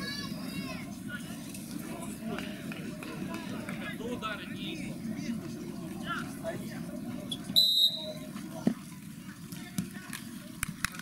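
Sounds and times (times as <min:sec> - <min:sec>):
players' voices: 0:00.0 - 0:10.8
referee's whistle blast: 0:07.6 - 0:08.2.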